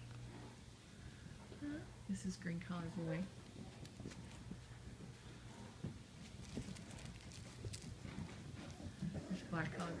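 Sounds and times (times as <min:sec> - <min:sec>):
puppies' paws scuffling: 0:03.0 - 0:10.0.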